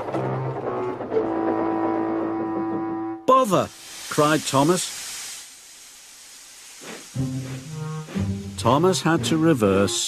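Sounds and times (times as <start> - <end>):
steam hissing: 3.3 - 9.9.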